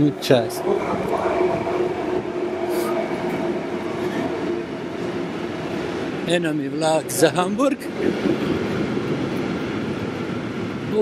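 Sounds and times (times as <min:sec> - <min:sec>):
steady held tone: 0:00.0 - 0:06.3
freight train rolling on rails: 0:00.0 - 0:11.0.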